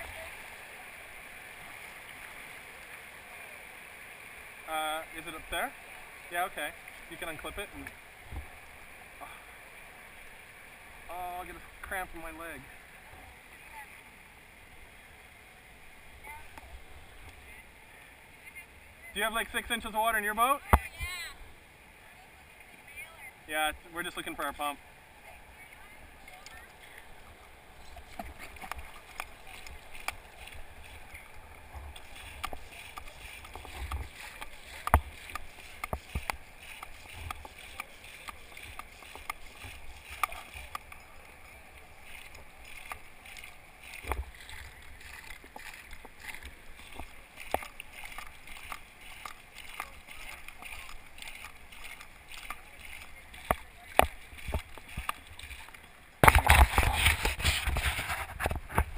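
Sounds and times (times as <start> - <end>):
river water rushing over rapids: 0.0 - 58.9.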